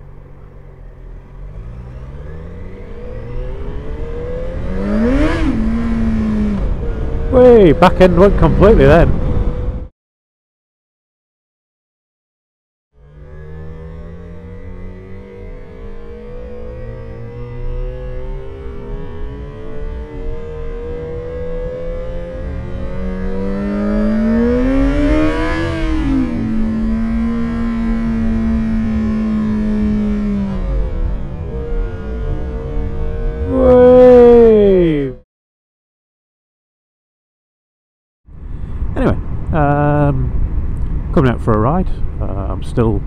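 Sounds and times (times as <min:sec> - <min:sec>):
slowed-down motorcycle engine: 0:00.0 - 0:09.9, 0:12.9 - 0:35.2, 0:38.3 - 0:43.0.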